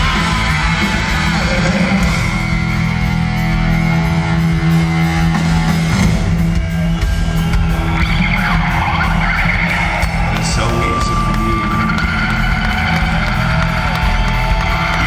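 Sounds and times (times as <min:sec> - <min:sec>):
bass: 0:00.0 - 0:15.0
distorted electric guitar chords: 0:00.0 - 0:15.0
drums: 0:00.0 - 0:15.0.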